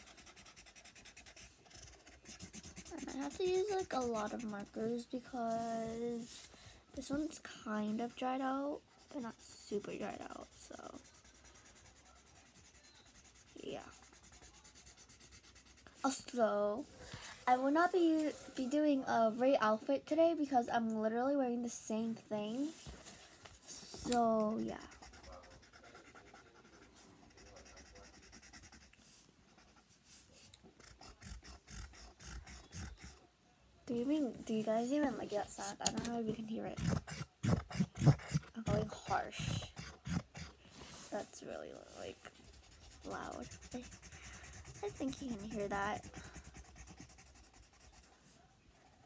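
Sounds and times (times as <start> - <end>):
marker rubbing on paper: 0.0 - 19.5, 22.5 - 33.2, 33.9 - 48.5.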